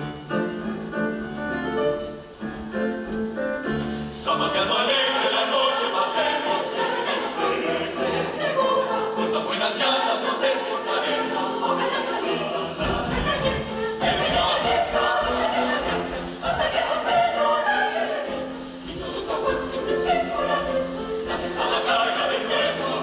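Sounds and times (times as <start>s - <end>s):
choir singing: 3.7s - 23.0s.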